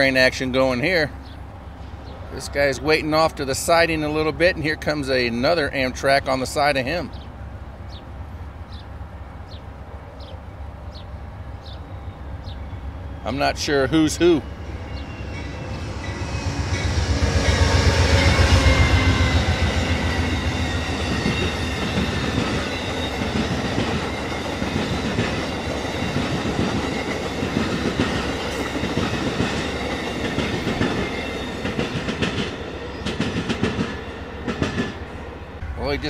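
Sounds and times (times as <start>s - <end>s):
diesel locomotive engine: 0.0s - 36.0s
train wheels clickety-clack: 16.1s - 35.0s.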